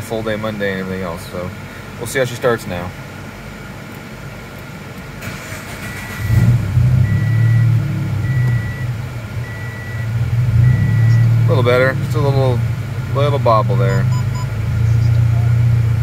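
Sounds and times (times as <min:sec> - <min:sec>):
car engine cranking and idling: 0:00.2 - 0:16.0
high warning chime beeps: 0:07.0 - 0:11.3, 0:13.9 - 0:15.1.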